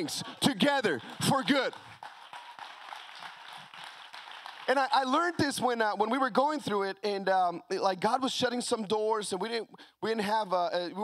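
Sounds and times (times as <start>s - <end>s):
congregation applauding: 0.0s - 5.8s.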